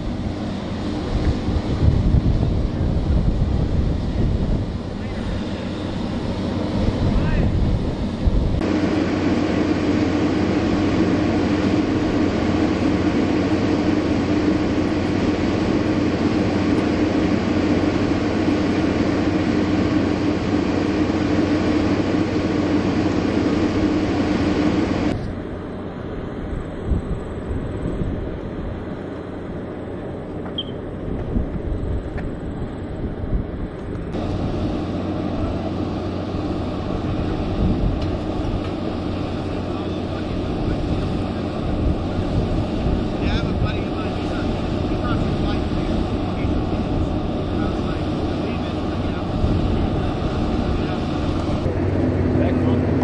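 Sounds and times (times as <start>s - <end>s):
wind on microphone: 0.0s - 25.4s, 26.3s - 29.0s, 30.6s - 53.0s
machinery droning: 0.0s - 53.0s.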